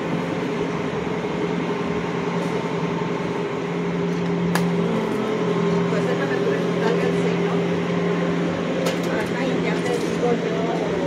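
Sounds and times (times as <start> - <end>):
steady mechanical hum: 0.0 - 11.0
street noise: 0.0 - 11.0.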